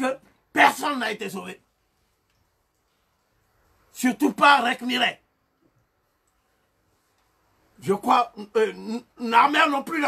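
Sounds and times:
man speaking: 0.0s - 1.7s, 3.9s - 5.2s, 7.8s - 10.0s
faint click: 2.2s - 2.9s, 7.1s - 7.4s.

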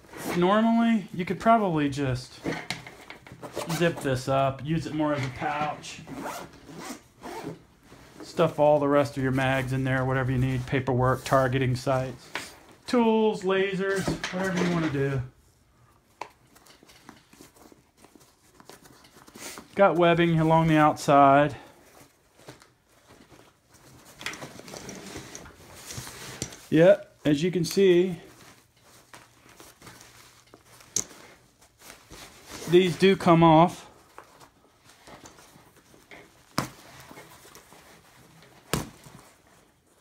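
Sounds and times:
zipper pulled shut: 6.0s - 7.6s
soft case rustling and scraping: 21.7s - 26.7s.

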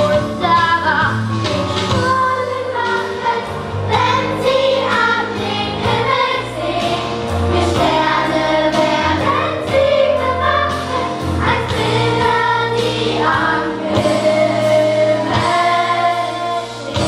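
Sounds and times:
musical accompaniment: 0.0s - 17.0s
children's choir singing: 1.9s - 17.0s.

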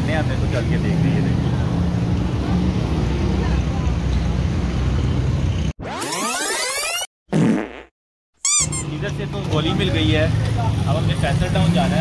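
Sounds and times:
street traffic rumble: 0.0s - 5.8s, 8.5s - 12.0s
rising sweep effect: 5.8s - 7.1s
fart sound effect: 5.8s - 8.8s.

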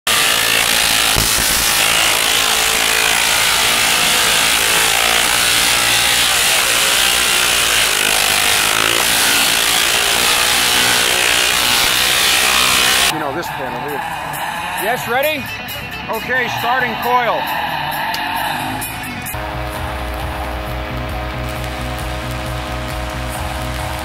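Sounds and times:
tesla coil buzzing: 0.1s - 13.2s, 19.1s - 24.0s.

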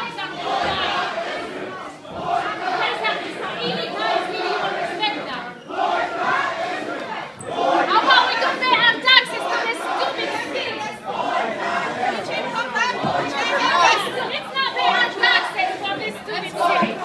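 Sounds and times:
crowd talking: 0.0s - 17.0s.

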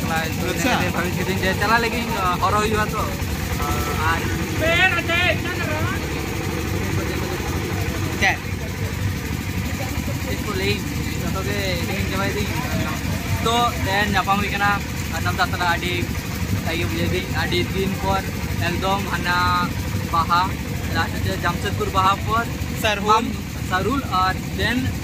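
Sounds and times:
low engine-like rumble: 0.0s - 25.0s.

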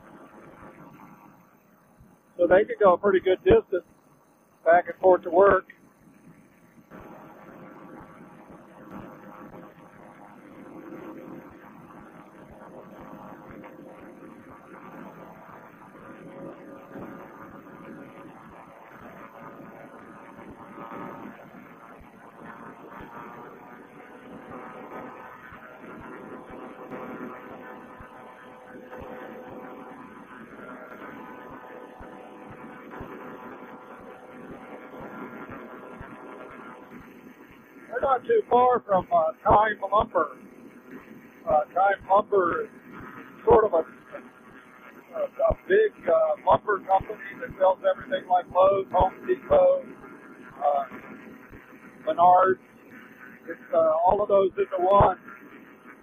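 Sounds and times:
paramotor engine droning: 6.9s - 36.9s.

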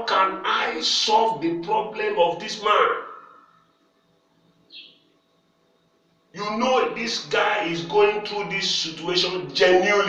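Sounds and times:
person speaking: 0.0s - 3.2s, 6.4s - 10.0s.

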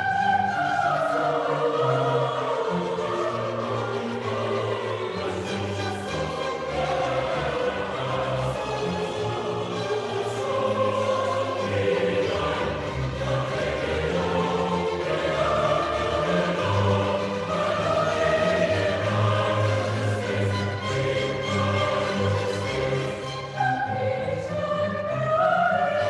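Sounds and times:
choir singing sustained chords: 0.0s - 26.0s.

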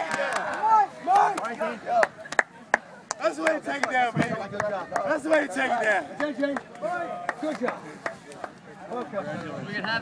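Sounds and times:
hand slaps on backs: 0.0s - 6.7s.

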